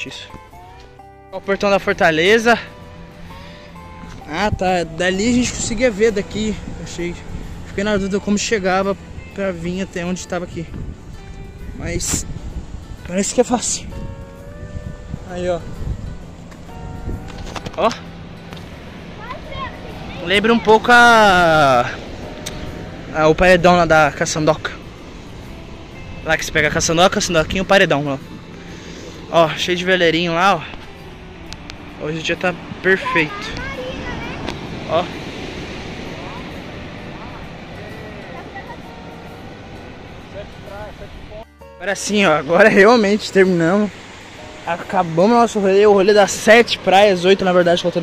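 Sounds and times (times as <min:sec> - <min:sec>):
wind: 0:00.0 - 0:48.0
sea surf washing on rocks: 0:03.3 - 0:13.8, 0:14.8 - 0:28.3, 0:29.1 - 0:48.0
wind on microphone: 0:04.1 - 0:24.2
surf washing against rocks: 0:31.5 - 0:41.4, 0:42.0 - 0:48.0.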